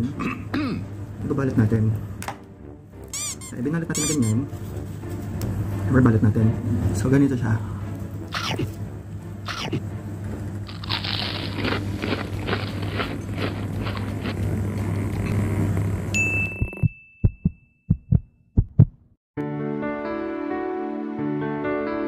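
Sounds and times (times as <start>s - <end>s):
gentle music: 0.0s - 14.9s, 19.4s - 22.0s
low hum: 9.2s - 18.9s
wet chewing: 10.7s - 15.5s.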